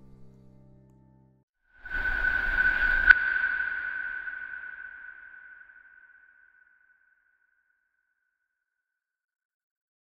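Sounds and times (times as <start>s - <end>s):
steady high tone: 1.8s - 6.6s.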